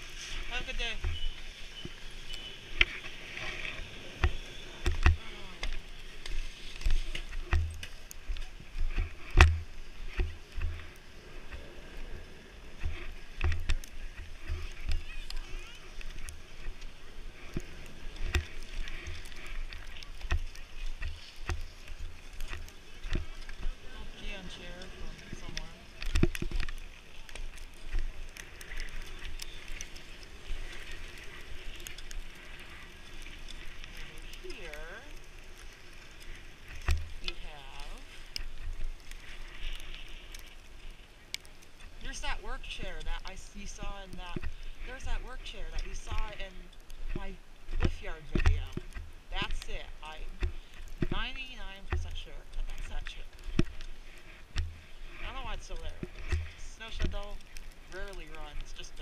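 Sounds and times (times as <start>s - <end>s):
skis sliding on snow: 0.0s - 59.0s
faint voices: 13.1s - 35.3s.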